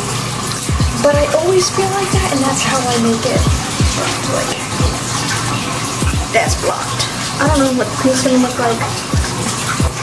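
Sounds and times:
water running from a tap: 0.0 - 10.0.

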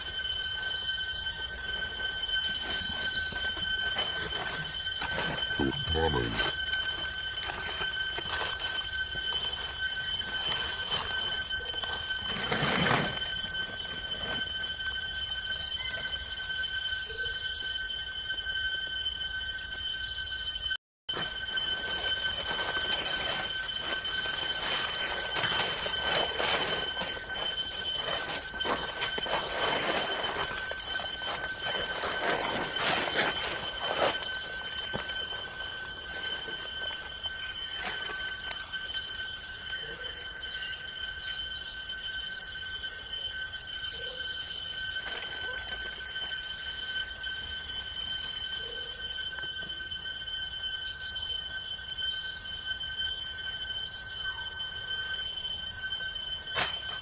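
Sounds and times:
high-pitched insect whine: 0.0 - 57.0
dry leaves rustling and crunching: 1.9 - 14.4, 21.1 - 38.6.

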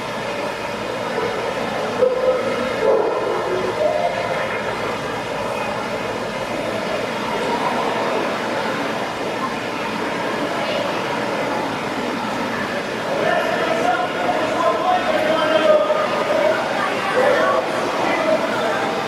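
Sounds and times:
crowd murmur: 0.0 - 19.0
reverberant hall noise: 0.0 - 19.0.

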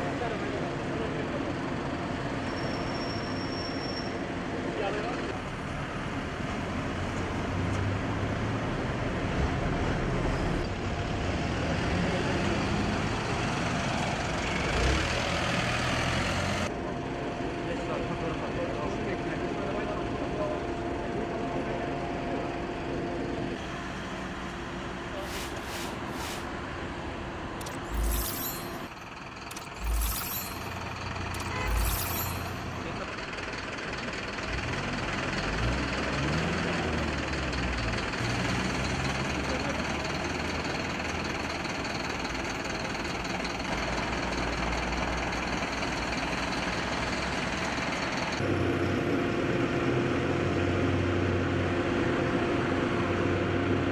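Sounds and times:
trucks and cars passing: 0.0 - 17.6, 22.3 - 53.9.

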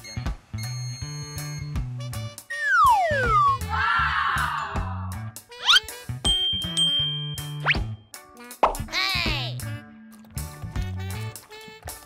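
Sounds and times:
children's music with bass line: 0.0 - 3.8, 4.5 - 12.0
rising whistle-like glide: 2.5 - 3.6.

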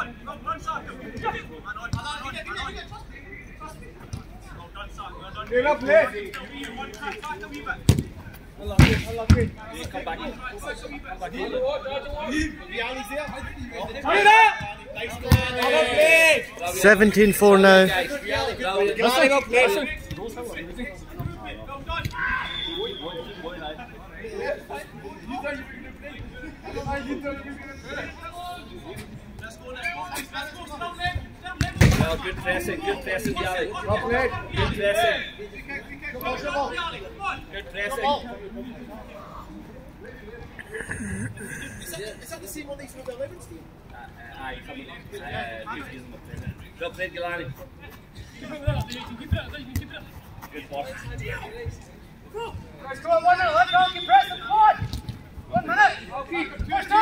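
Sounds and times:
men calling and chatting: 0.0 - 57.0
players shouting: 14.0 - 19.8
man laughing: 40.6 - 42.0.

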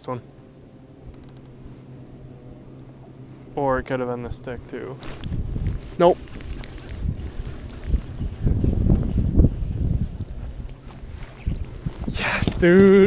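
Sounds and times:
wind buffeting microphone: 5.0 - 13.0.

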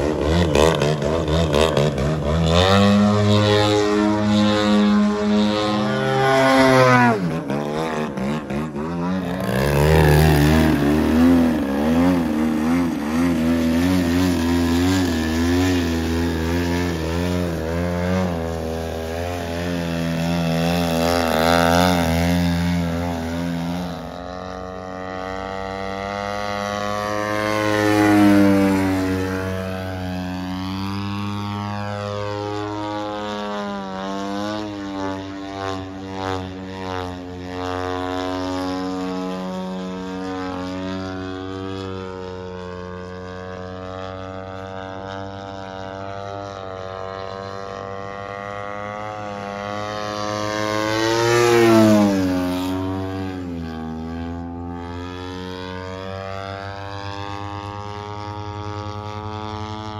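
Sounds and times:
model airplane engines buzzing: 0.0 - 59.9.

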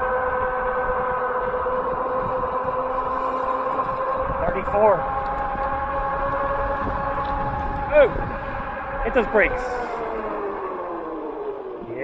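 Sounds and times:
e-bike whine slowing: 0.0 - 12.0.

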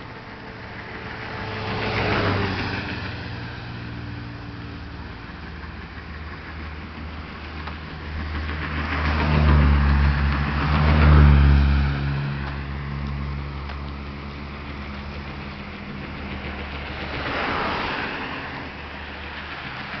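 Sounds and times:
road traffic passing: 0.0 - 20.0
vehicle engine hum: 0.0 - 20.0.

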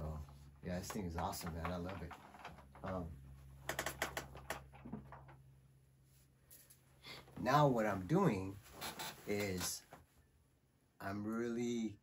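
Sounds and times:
plastic toy boat clicking and rattling: 0.9 - 3.0, 3.6 - 5.3.

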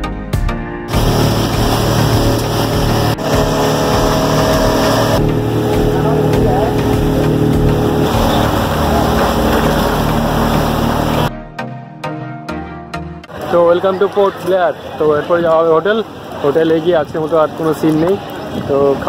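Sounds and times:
motorboat engine running: 0.9 - 11.3
water noise: 0.9 - 11.3
wind noise on microphone: 16.8 - 19.0.

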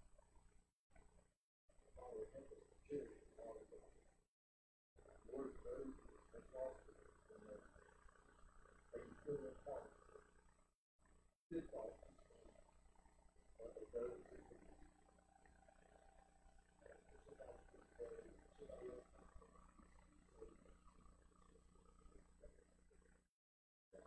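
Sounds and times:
faint muffled man speaking: 2.0 - 3.9, 5.1 - 7.6, 9.0 - 9.9, 11.5 - 12.0, 13.6 - 14.7, 16.8 - 19.2.

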